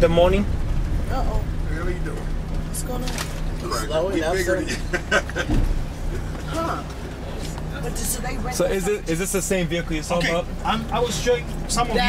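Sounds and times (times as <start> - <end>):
low bump: 0.0 - 4.2, 4.8 - 7.8
van engine running: 0.0 - 12.0.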